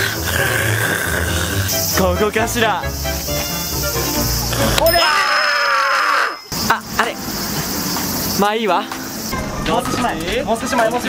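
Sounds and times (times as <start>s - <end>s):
man screaming: 4.8s - 6.5s.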